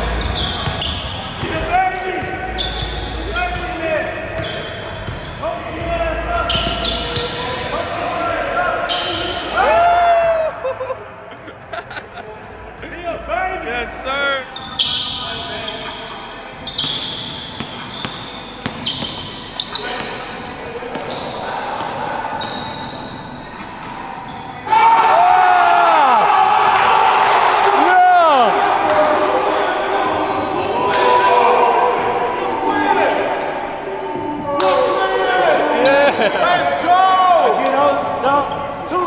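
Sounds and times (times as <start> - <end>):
people's voices in a gym: 0.0 - 39.0
players shouting: 24.6 - 38.2.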